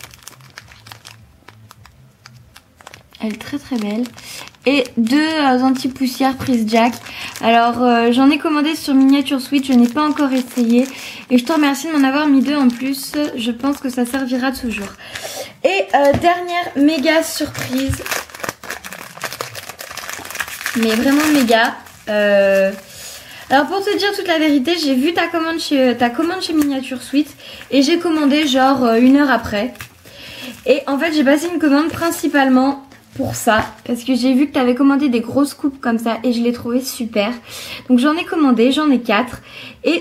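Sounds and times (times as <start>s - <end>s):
plastic bag crinkling: 0.0s - 34.2s.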